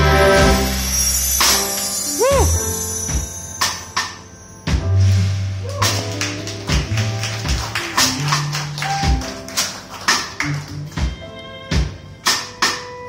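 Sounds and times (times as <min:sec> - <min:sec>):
drum kit hits: 0:00.0 - 0:09.5.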